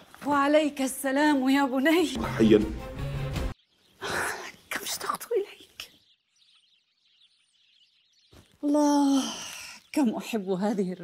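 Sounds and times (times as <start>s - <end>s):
faint bird chirps: 3.5s - 11.0s.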